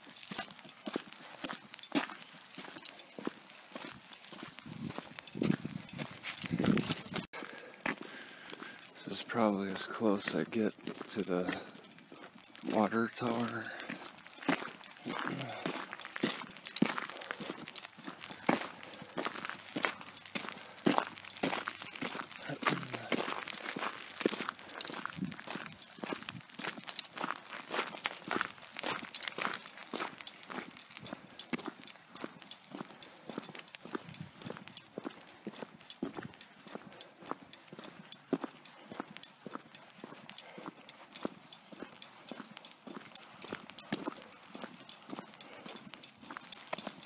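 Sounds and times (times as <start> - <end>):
footsteps on asphalt: 0.0 - 47.0.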